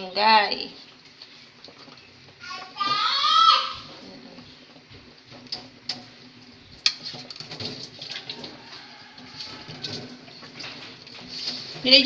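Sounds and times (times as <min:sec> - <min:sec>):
ladle scraping metal pan: 0:05.4 - 0:12.0.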